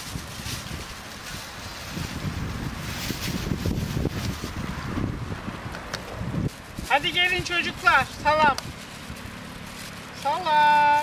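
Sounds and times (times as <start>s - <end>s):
brief rustles: 0.0s - 4.6s
wind buffeting microphone: 0.0s - 10.1s.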